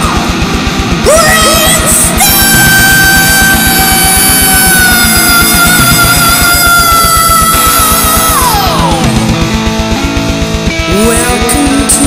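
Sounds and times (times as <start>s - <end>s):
heavy metal song: 0.0s - 12.0s.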